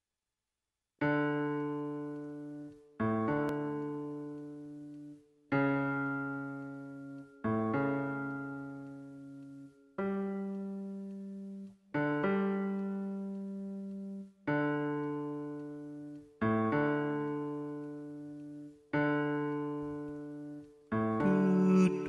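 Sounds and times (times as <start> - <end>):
piano chords on keyboard: 1.0 - 22.0.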